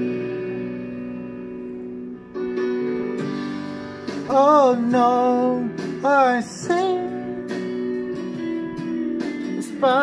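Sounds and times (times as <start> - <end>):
guitar chords ringing: 0.0 - 10.0.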